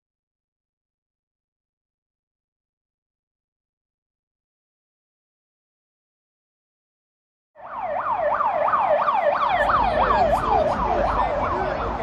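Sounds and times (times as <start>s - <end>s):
emergency vehicle siren: 7.6s - 12.0s
low traffic rumble: 7.6s - 12.0s.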